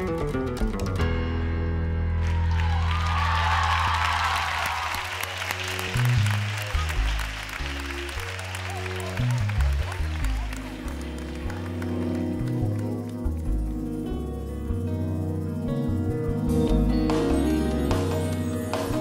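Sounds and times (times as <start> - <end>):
audience applause: 2.2 - 13.7
pop band playing: 16.0 - 19.0.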